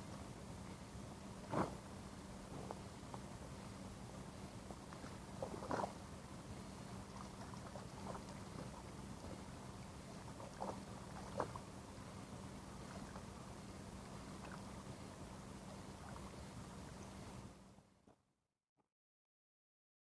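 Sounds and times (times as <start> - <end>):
steady low hum: 0.0 - 18.1
fish splashing in water: 10.1 - 11.8.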